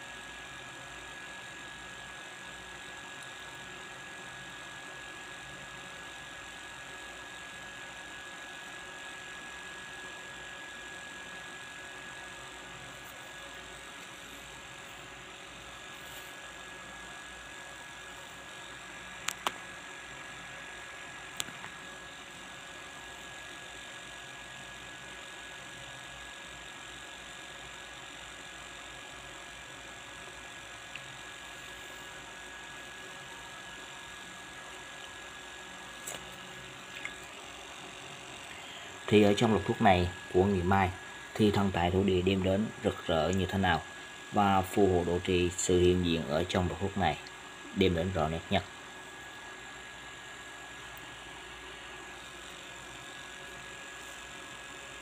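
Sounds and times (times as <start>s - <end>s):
background hum and hiss: 0.0s - 55.0s
high constant whine: 0.0s - 55.0s.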